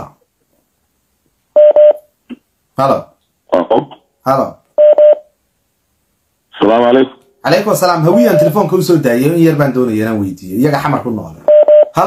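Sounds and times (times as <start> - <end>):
electronic telephone-style beeps: 1.6 - 2.0, 4.8 - 5.2, 11.5 - 12.0.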